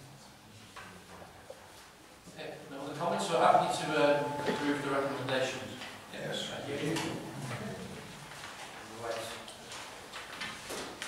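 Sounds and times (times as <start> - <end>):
man speaking into a microphone: 2.4 - 7.3.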